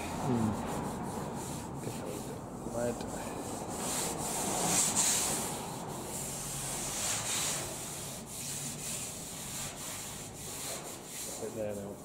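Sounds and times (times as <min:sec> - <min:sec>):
sandpaper rubbing on steel: 0:00.4 - 0:12.0.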